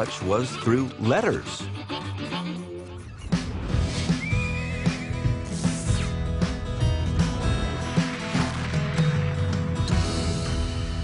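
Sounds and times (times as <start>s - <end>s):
horse whinnying: 4.1s - 5.5s.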